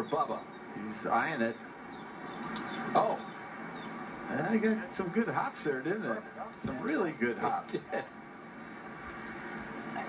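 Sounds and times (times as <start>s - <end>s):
television golf broadcast: 0.0s - 10.0s.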